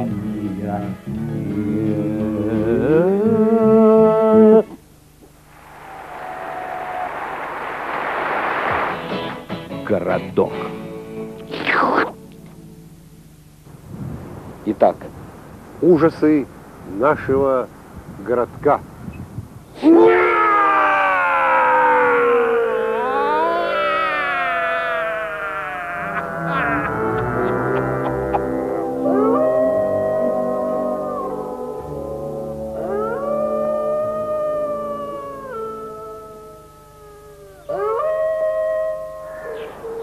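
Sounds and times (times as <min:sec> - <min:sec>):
man wailing: 0:19.8 - 0:28.5
dog howling: 0:19.8 - 0:32.1, 0:32.7 - 0:40.0.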